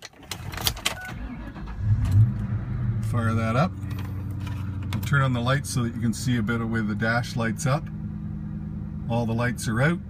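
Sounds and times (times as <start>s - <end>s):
car engine starting and rumbling: 0.0s - 10.0s.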